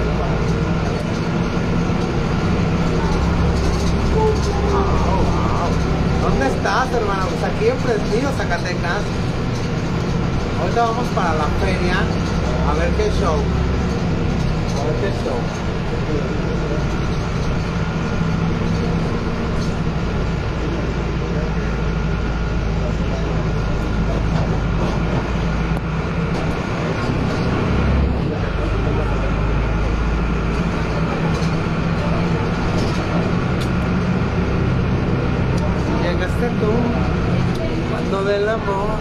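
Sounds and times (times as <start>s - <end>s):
bus engine rumble and road noise: 0.0s - 39.0s.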